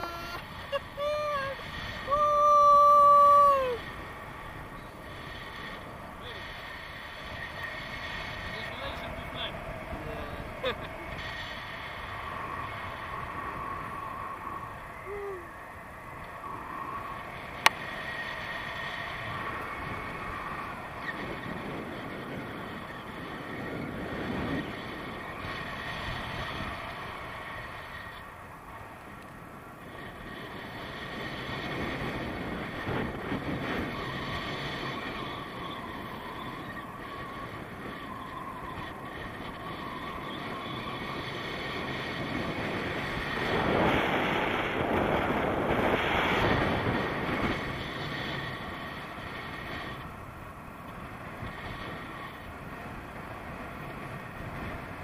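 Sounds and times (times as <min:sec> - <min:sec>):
man shouting in excitement: 0:00.0 - 0:03.8
wind rushing over microphone: 0:00.0 - 0:55.0.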